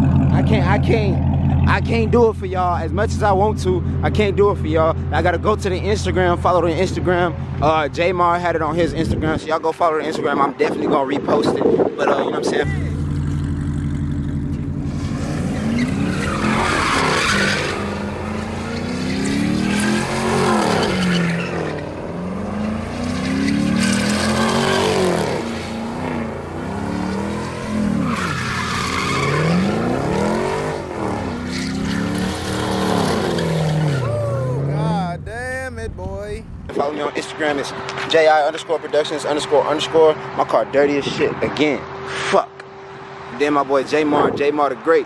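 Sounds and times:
car engine revving: 0.0 - 8.9, 12.6 - 40.4
tires squealing on concrete: 0.0 - 35.1, 36.8 - 45.0.

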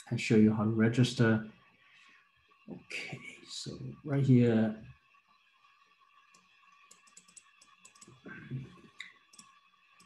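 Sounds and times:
computer keyboard and mouse clicks: 6.9 - 8.2.

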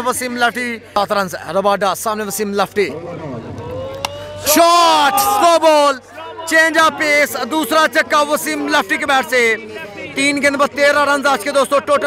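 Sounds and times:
person shouting: 3.7 - 5.8.

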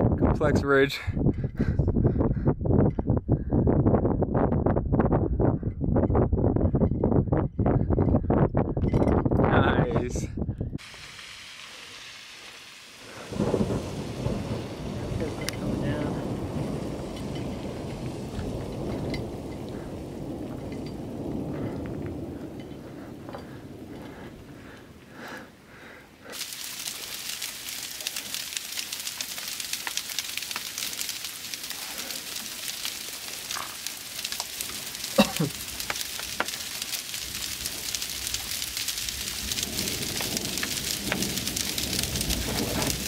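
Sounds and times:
heavy rain pattering: 10.8 - 43.0
deep rolling thunder: 13.2 - 24.8, 37.2 - 43.0.

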